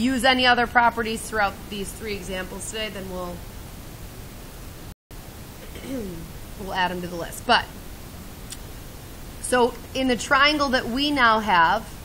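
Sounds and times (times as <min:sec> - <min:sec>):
room and recording hiss: 0:00.0 - 0:12.0
faint voice: 0:05.6 - 0:06.3.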